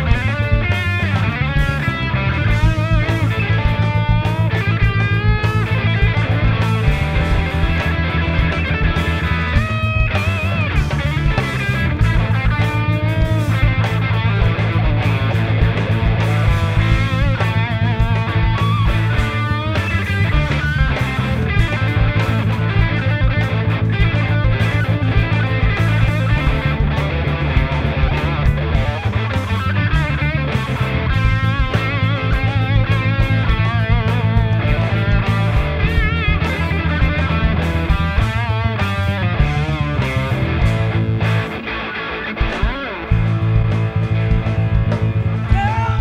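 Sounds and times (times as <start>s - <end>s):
electric guitar lead with bends: 0.0s - 46.0s
low accompaniment with beat: 0.0s - 46.0s.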